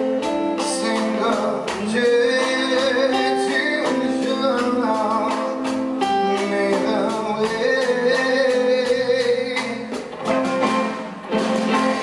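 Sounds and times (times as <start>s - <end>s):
guitar: 0.0s - 12.0s
man singing: 0.4s - 10.2s.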